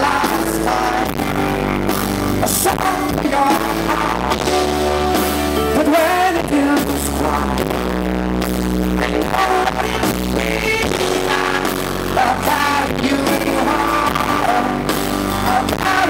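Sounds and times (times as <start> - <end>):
man singing: 0.0 - 8.0, 9.0 - 16.0
pop-rock band playing: 0.0 - 16.0.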